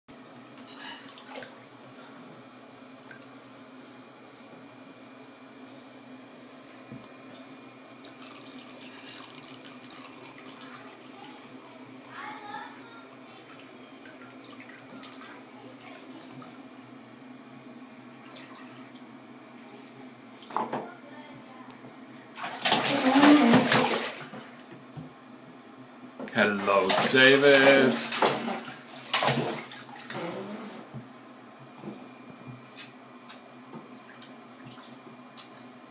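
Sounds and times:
bathwater splashing and trickling: 0:08.0 - 0:11.8, 0:22.4 - 0:24.6, 0:26.4 - 0:30.2.

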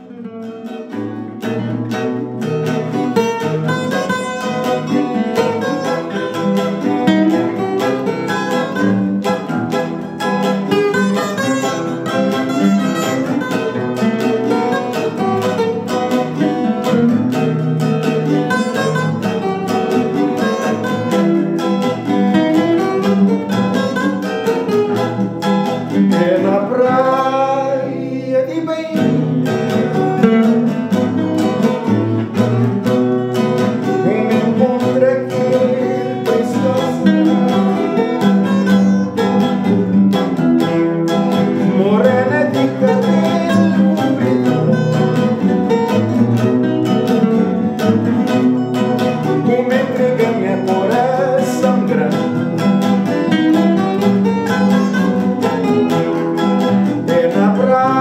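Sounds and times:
acoustic guitars playing: 0:00.0 - 0:58.0
small four-string guitar playing: 0:00.0 - 0:58.0
man singing: 0:25.9 - 0:31.9, 0:33.4 - 0:38.9, 0:41.3 - 0:58.0.

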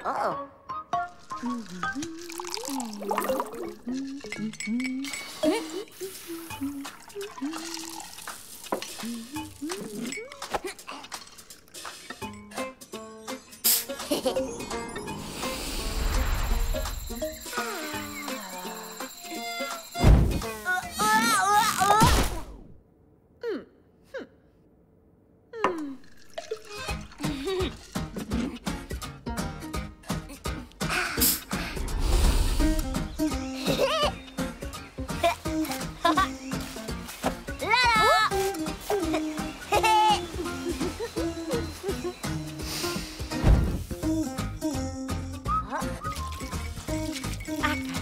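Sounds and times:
wavering cartoon tune: 0:12.6 - 0:21.8
cartoon music: 0:16.3 - 0:21.8, 0:44.1 - 0:48.0.

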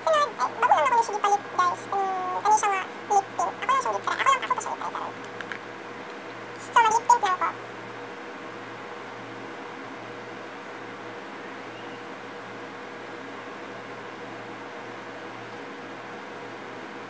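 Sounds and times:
high-pitched wavering cry: 0:00.0 - 0:05.1
steady low hum: 0:00.0 - 0:17.0.

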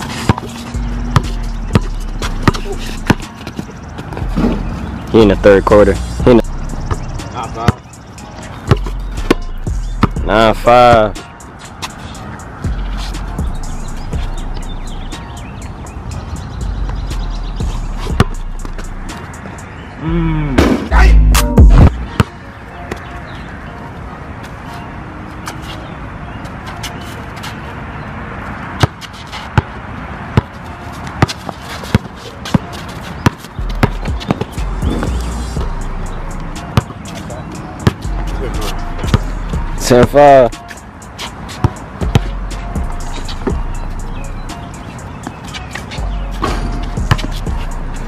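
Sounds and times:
basketball bouncing on asphalt: 0:00.0 - 0:05.1, 0:06.3 - 0:19.9, 0:21.6 - 0:23.5, 0:28.4 - 0:35.7, 0:36.5 - 0:38.4, 0:39.0 - 0:47.8
music with deep bass beat: 0:00.1 - 0:22.3, 0:33.6 - 0:40.9, 0:41.7 - 0:48.0
loud vocal outburst: 0:20.0 - 0:21.4.

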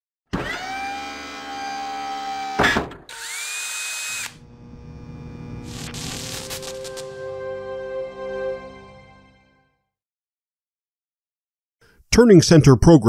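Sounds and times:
power tool motor whirring: 0:00.3 - 0:07.1.

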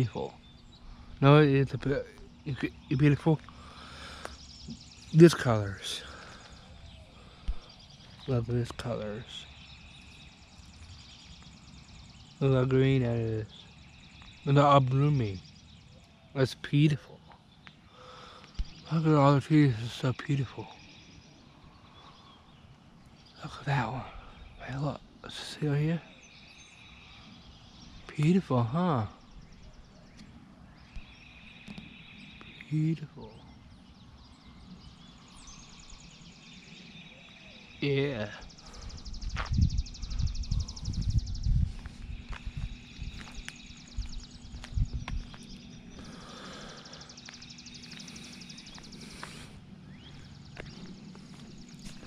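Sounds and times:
bird chirps: 0:00.0 - 0:52.0.

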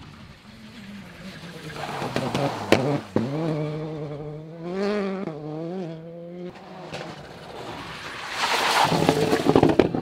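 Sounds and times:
rally car engine at high revs: 0:00.5 - 0:10.0.

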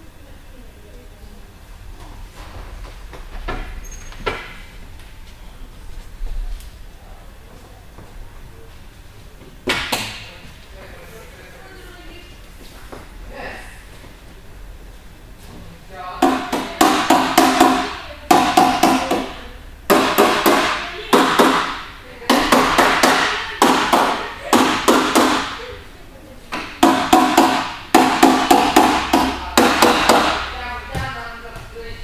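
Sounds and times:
rapid hard knocking: 0:16.2 - 0:25.6, 0:26.7 - 0:30.6.

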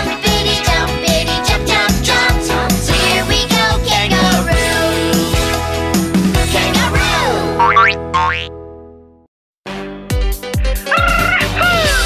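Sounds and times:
children's song music: 0:00.0 - 0:08.5, 0:09.7 - 0:12.0
cartoon boing sound effects: 0:07.6 - 0:08.5.

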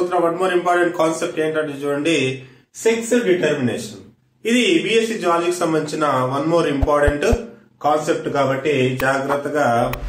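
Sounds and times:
man lecturing: 0:00.0 - 0:10.0.

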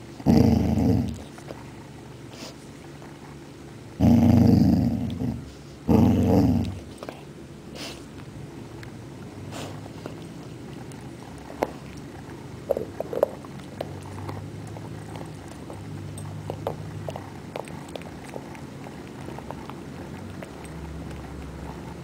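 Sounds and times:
dog growling: 0:00.2 - 0:01.9, 0:04.0 - 0:07.3, 0:09.5 - 0:22.0
chewing clicks: 0:08.1 - 0:22.0.

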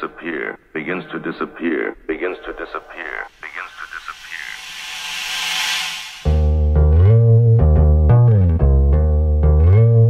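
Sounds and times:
echoing spoken vocal sample: 0:02.0 - 0:04.7
hissing riser effect: 0:03.3 - 0:06.7.

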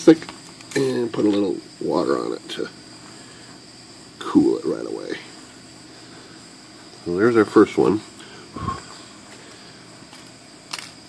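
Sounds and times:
faint high whine: 0:00.0 - 0:11.0
fan hissing: 0:00.0 - 0:11.0.

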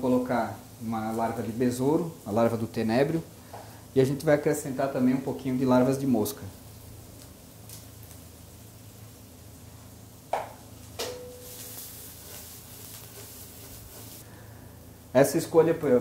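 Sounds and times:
larvae sizzling in hot oil: 0:00.0 - 0:16.0
steady low hum: 0:00.0 - 0:16.0.

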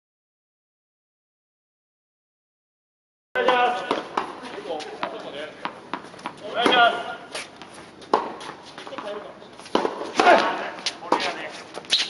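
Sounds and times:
tennis ball bouncing on court: 0:03.4 - 0:12.0.

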